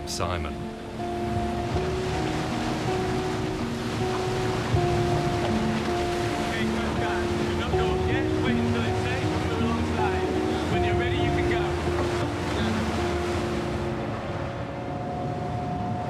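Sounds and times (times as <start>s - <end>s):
boat engines: 0.0s - 16.0s
music with long held notes: 0.0s - 16.0s
rushing water: 0.0s - 16.0s.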